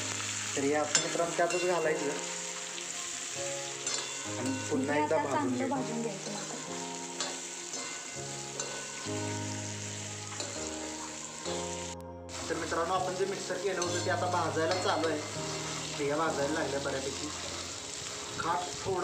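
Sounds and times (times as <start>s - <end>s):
background music: 0.0s - 19.0s
food sizzling in pan: 0.0s - 19.0s
metal spatula stirring: 3.8s - 4.9s, 6.2s - 9.3s, 10.3s - 11.8s, 12.4s - 17.7s.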